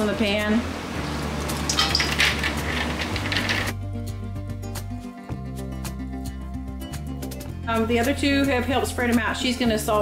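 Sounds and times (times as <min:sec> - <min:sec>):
music: 0:00.0 - 0:10.0
seeds clattering against metal: 0:01.4 - 0:03.8.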